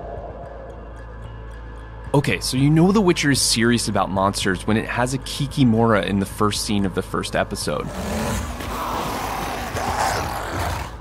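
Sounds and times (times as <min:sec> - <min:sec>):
monster growling cries: 0:07.8 - 0:11.0.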